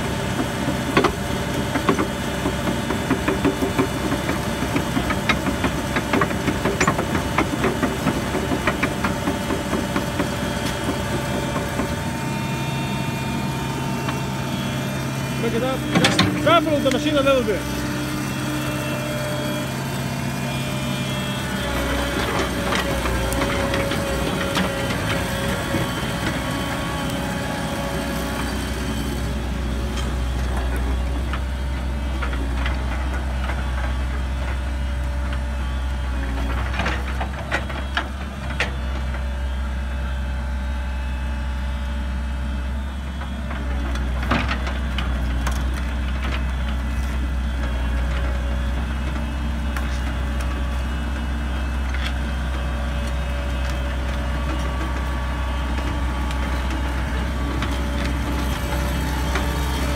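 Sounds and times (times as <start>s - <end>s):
engine whine: 0.0s - 59.9s
excavator diesel engine running: 0.0s - 59.9s.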